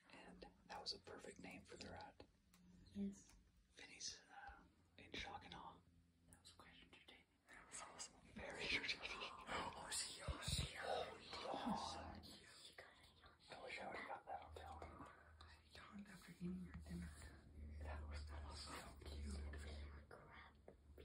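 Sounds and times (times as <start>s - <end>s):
faint whispering voices: 0.0s - 21.0s
low steady hum: 0.0s - 21.0s.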